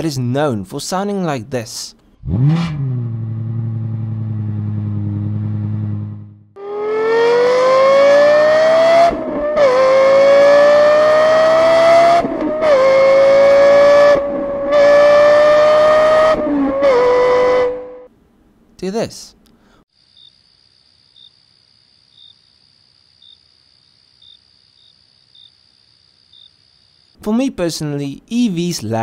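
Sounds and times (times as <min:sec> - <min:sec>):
car engine revving through gears: 0:02.2 - 0:18.1.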